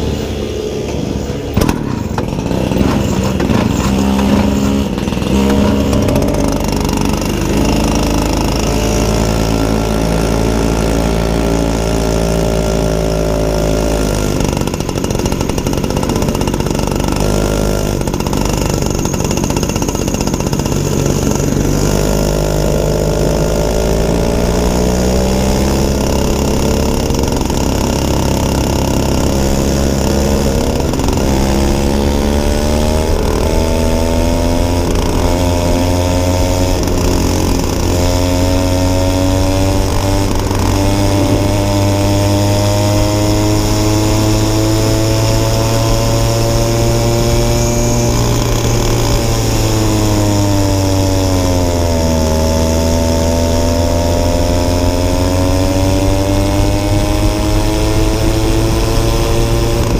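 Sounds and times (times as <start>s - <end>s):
go-kart engine revving: 0.0s - 59.9s.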